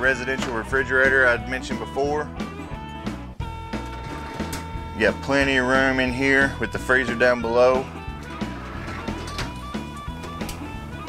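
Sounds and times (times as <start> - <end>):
guitar music: 0.0 - 11.0.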